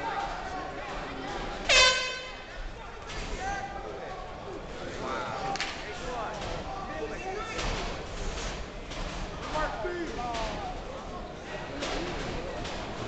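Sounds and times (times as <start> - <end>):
crowd chatter in echoing hall: 0.0 - 13.0.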